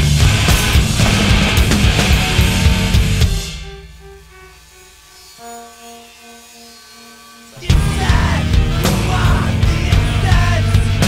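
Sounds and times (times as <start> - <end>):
heavy rock band music: 0.0 - 5.4, 7.6 - 11.0
sparse held notes: 0.0 - 11.0.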